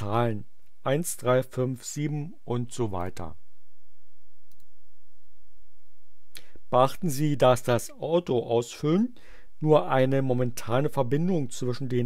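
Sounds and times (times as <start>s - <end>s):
computer mouse click: 4.5s - 4.7s.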